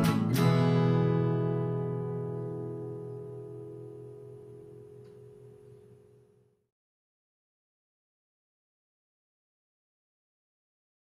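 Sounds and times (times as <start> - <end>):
acoustic guitar chord ringing: 0.0 - 6.6.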